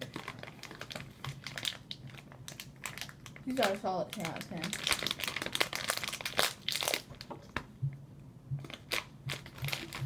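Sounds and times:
plastic bag crinkling: 0.0 - 7.6, 8.6 - 10.0.

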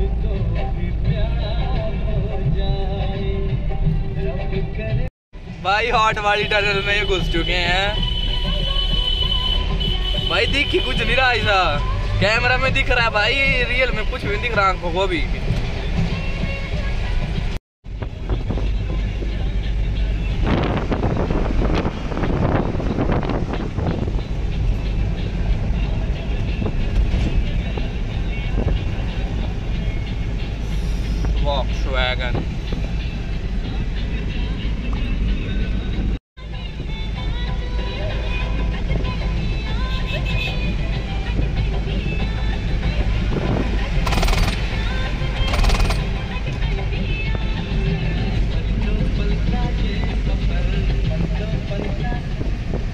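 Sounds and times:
engine and road rumble: 0.0 - 52.9.

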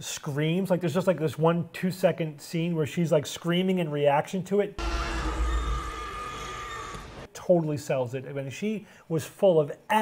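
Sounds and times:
deep rumble: 4.8 - 7.3.

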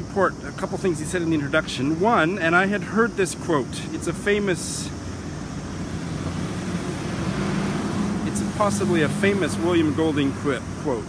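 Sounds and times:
traffic hiss: 0.0 - 11.0
vehicle engine hum: 0.0 - 11.0.

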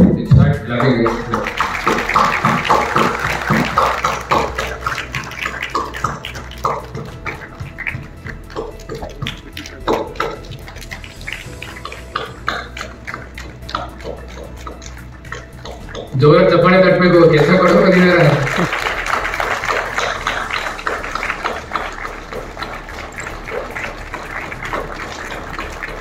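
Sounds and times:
audience clapping: 0.5 - 26.0.

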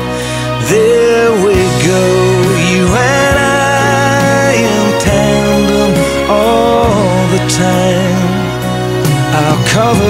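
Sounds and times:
man singing: 0.0 - 10.0
piano accompaniment: 0.0 - 10.0.

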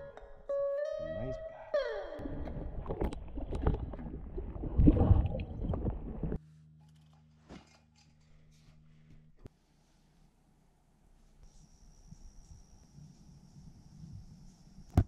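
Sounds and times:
underwater splashing and gurgling: 2.2 - 6.4.

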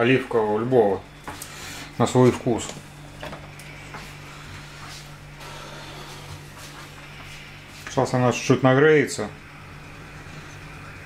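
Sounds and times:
low steady hum: 0.0 - 11.0
gas burner hissing: 0.8 - 11.0.

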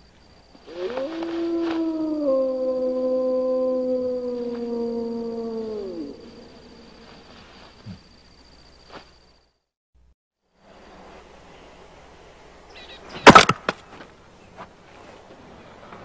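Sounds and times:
wolf howling: 0.6 - 7.3.

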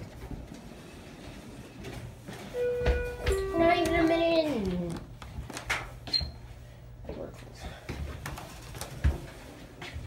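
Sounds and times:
elevator hum: 0.0 - 5.2.

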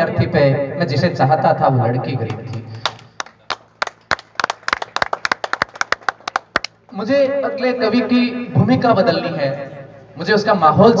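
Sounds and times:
sparse audience clapping: 2.3 - 7.0.

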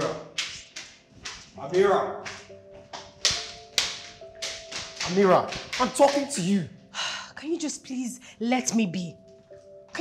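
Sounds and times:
soft background music: 0.0 - 10.0
footsteps on hard floor: 0.4 - 6.5.

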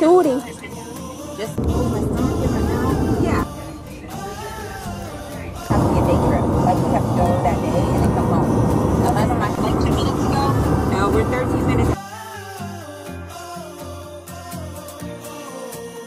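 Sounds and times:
loud voices: 1.2 - 12.0
car cabin rumble: 1.6 - 12.0.

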